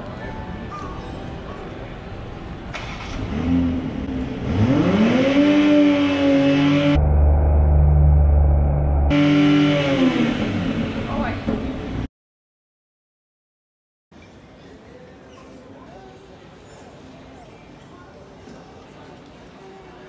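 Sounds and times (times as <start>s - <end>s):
car engine revving: 2.8s - 12.1s
deep engine rumble: 6.5s - 12.1s.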